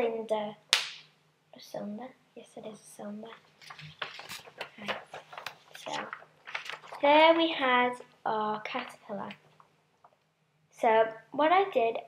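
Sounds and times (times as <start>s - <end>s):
paper rustling and crackling: 3.3s - 7.9s.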